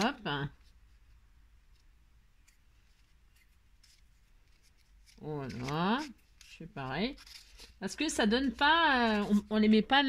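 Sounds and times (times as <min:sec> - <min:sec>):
cardboard handled in fingers: 0:00.6 - 0:09.8.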